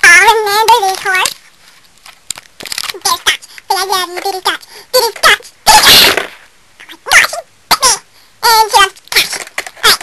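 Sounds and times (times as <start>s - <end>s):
high-pitched voice vocalizing: 6.8s - 10.0s.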